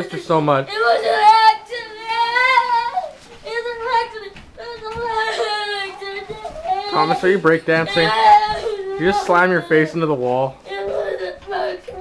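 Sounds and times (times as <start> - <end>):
young boy crying: 0.0 - 12.0.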